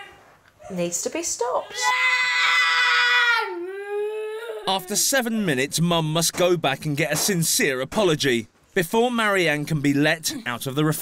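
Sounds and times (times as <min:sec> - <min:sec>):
girl screaming: 0:01.6 - 0:04.7.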